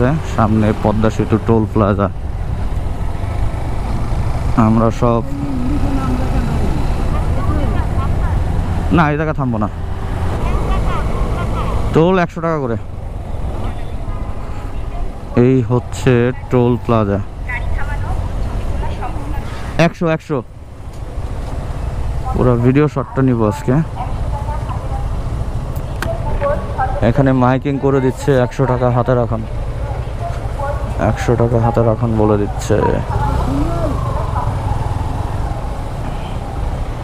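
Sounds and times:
motorcycle engine rumble: 0.0s - 19.4s, 20.4s - 37.0s
faint voice: 5.2s - 8.2s, 32.8s - 34.6s.

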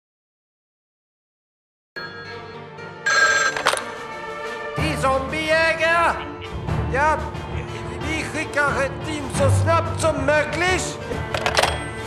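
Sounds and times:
telephone ringing: 2.0s - 4.1s
steady music: 2.0s - 12.0s.

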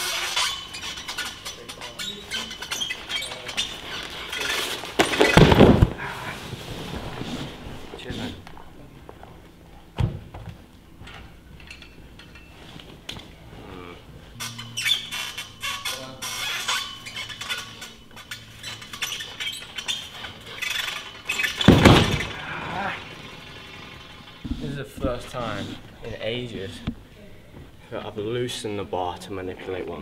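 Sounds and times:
high bar clicking and squeaking: 0.0s - 5.8s, 10.8s - 13.2s, 14.4s - 25.6s
thump on landing mat: 5.0s - 6.0s, 21.6s - 22.4s.

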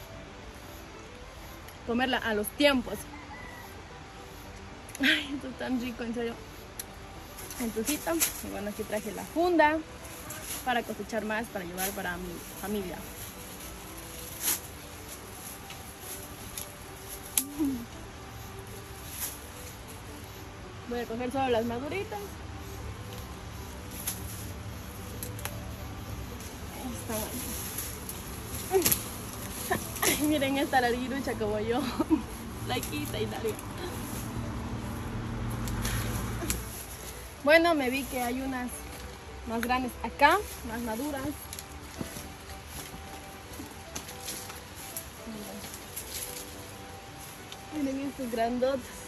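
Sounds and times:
branches and leaves rustling: 0.0s - 49.0s
fruit snapping off branches: 17.3s - 17.8s, 28.7s - 30.2s.

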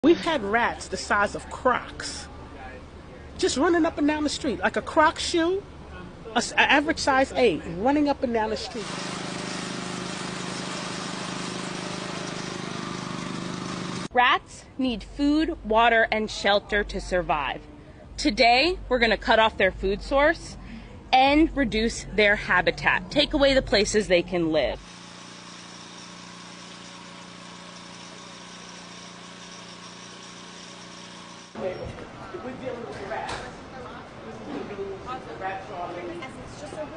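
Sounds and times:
engine humming with hiss: 8.8s - 14.1s
small engine idling: 8.8s - 14.1s, 24.8s - 31.6s.

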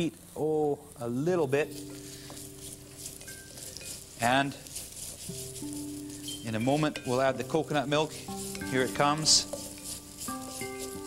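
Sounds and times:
paste sizzling in hot oil: 0.0s - 11.0s
soft background music: 0.0s - 11.0s
spatula stirring in pot: 1.3s - 11.0s.

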